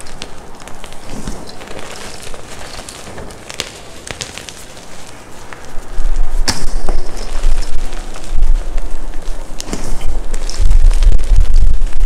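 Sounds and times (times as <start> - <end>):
chalk crumbling and crunching: 0.0 - 12.0.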